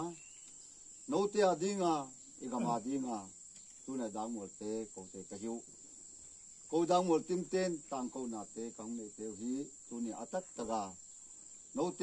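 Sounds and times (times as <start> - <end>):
man talking: 1.1 - 3.3, 3.9 - 5.6, 6.8 - 11.0, 11.8 - 12.0.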